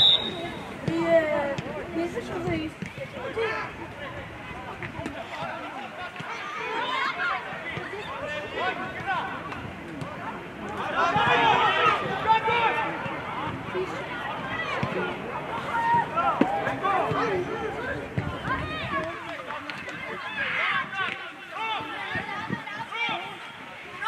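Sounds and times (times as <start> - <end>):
voices shouting: 3.1 - 24.0.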